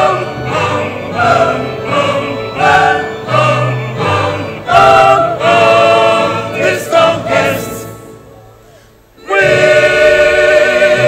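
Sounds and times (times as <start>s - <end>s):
church choir singing: 0.0s - 8.2s, 9.2s - 11.0s
organ accompaniment: 0.0s - 11.0s.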